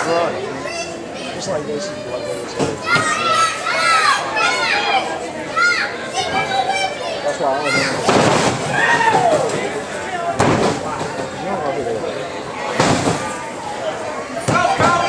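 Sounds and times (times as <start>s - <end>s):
crowd shouting: 0.0s - 15.0s.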